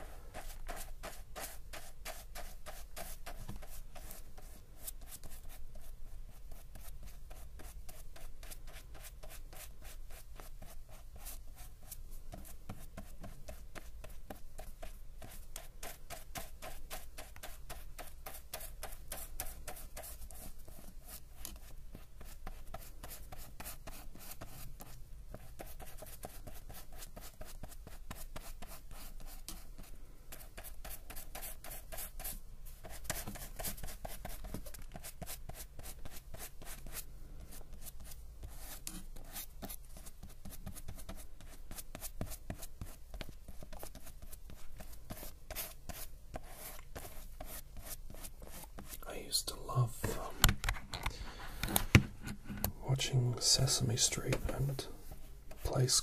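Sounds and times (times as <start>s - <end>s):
paintbrush strokes on paper: 0.0s - 50.3s, 52.8s - 56.0s.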